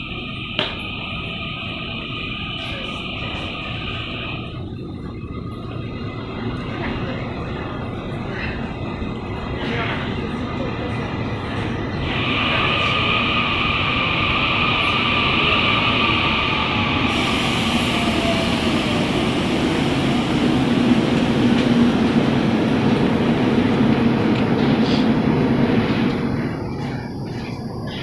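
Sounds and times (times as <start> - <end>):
train rumbling: 0.0 - 28.0.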